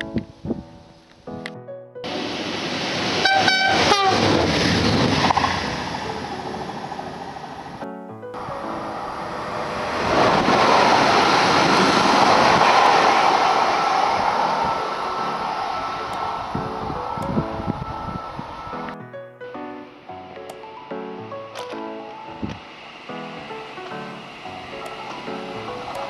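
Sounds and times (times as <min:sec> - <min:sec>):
train rushing on rails: 0:02.0 - 0:19.0, 0:19.9 - 0:26.0
music playing: 0:03.8 - 0:11.8, 0:12.5 - 0:26.0.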